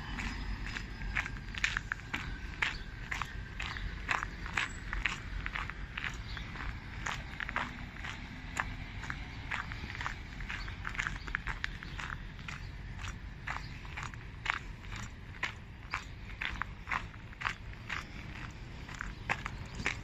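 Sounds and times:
footsteps on gravel: 0:00.0 - 0:20.0.

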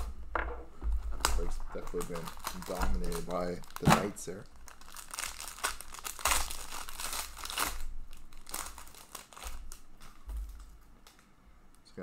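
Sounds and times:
foil wrapper crinkling and tearing: 0:01.2 - 0:11.2.

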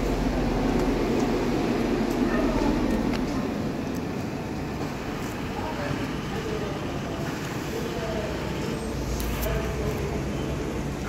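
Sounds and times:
outdoor rumble: 0:00.0 - 0:07.3.

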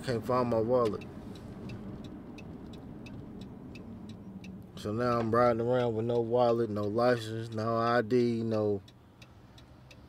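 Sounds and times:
car road and engine rumble: 0:00.0 - 0:10.0
turn signal ticking: 0:00.0 - 0:10.0.

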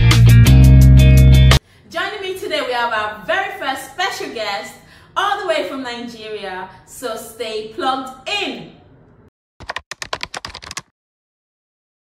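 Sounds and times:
keyboard key clicks: 0:09.6 - 0:10.9.

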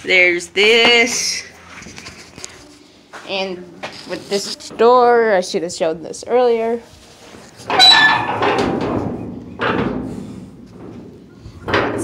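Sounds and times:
stiff door scraping and squealing: 0:07.6 - 0:09.3
door rattling and knocking: 0:07.7 - 0:10.1.

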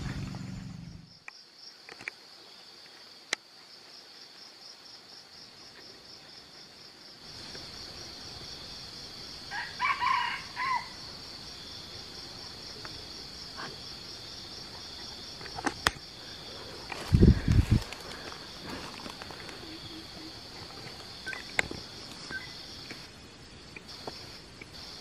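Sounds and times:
high pulsing insect chorus: 0:00.0 - 0:25.0
rooster crowing: 0:09.5 - 0:11.1.

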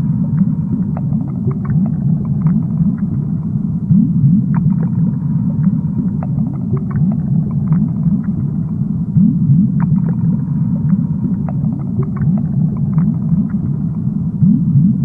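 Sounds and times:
rising gurgles: 0:00.0 - 0:15.0
underwater low rumble: 0:00.0 - 0:15.0.

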